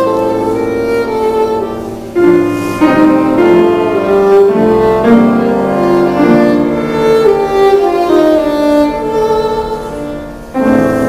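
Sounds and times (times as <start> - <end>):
viola bowing sustained notes: 0.0 - 10.6
piano accompaniment: 0.0 - 11.0.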